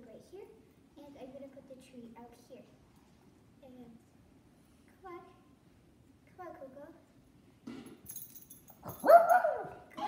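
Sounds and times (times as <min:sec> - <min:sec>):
small dog yelping: 0:09.0 - 0:09.8.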